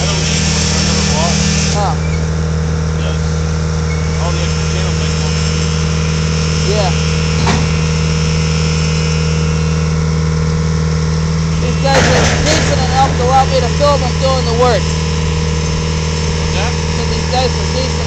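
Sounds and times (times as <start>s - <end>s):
engine idling: 0.0s - 18.0s
faint squeaks: 3.8s - 4.5s.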